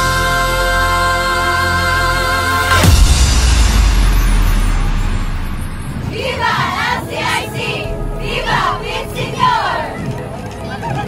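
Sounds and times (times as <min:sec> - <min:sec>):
stadium crowd roaring: 0:06.0 - 0:11.0.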